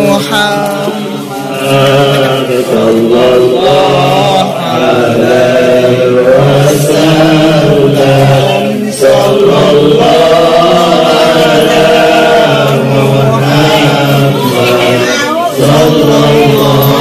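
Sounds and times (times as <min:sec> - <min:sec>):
men chanting through microphone: 0:00.0 - 0:17.0.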